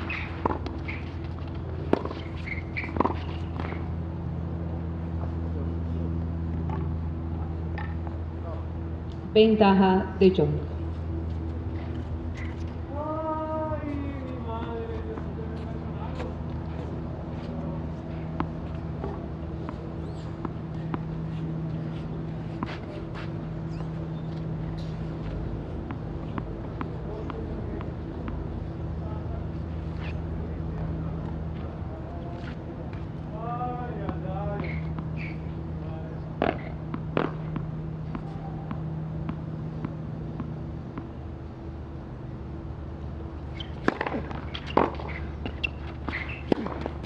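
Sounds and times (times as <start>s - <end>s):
tennis ball bouncing on clay: 0.0s - 3.8s, 36.4s - 41.1s, 43.6s - 47.0s
steady low hum: 0.0s - 47.0s
tennis serve struck: 43.6s - 46.9s.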